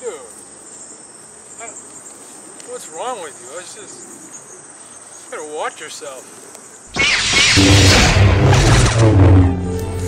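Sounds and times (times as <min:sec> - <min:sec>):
insects chirring: 0:00.0 - 0:09.0.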